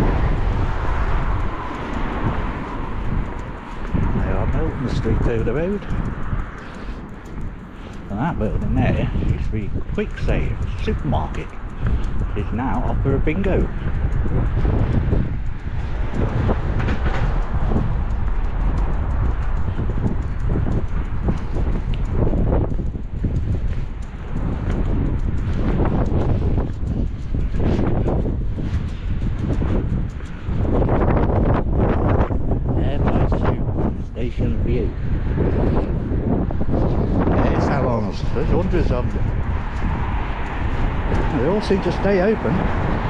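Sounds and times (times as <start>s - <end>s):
footsteps on pavement: 0.0s - 43.0s
wind buffeting microphone: 0.0s - 43.0s.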